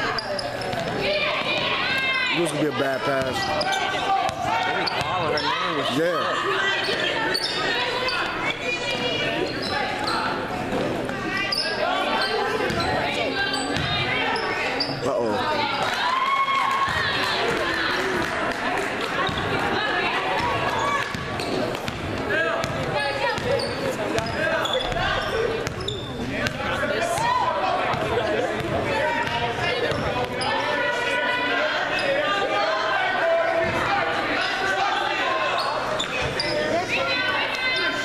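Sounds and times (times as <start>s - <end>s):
echoing voices: 0.0s - 38.0s.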